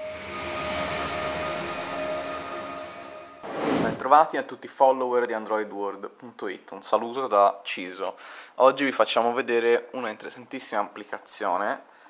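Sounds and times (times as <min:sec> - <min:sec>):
hissing whoosh: 0:03.4 - 0:04.1.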